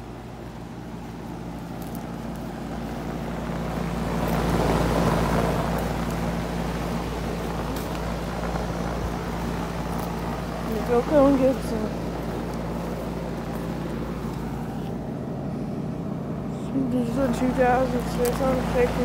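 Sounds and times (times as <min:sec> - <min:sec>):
air conditioner fan whoosh: 0:00.0 - 0:19.0
compressor hum: 0:00.0 - 0:19.0.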